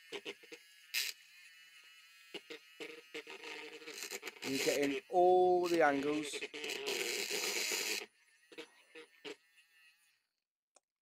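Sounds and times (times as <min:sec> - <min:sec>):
paint stirrer whining: 0:00.0 - 0:10.4.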